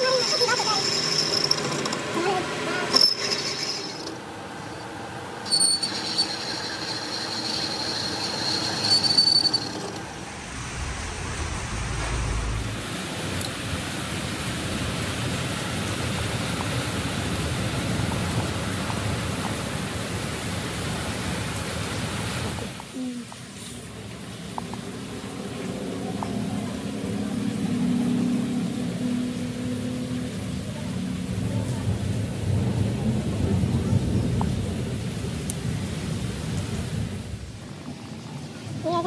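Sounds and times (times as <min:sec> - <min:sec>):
lathe cutting tool squealing: 0:00.0 - 0:10.2
broad machine noise: 0:00.0 - 0:22.9, 0:23.8 - 0:39.0
low machine rumble: 0:03.4 - 0:15.4, 0:23.8 - 0:39.0.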